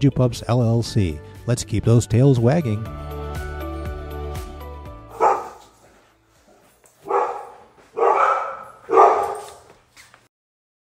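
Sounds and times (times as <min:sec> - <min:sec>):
dog barking: 0:05.1 - 0:05.8, 0:07.0 - 0:09.7.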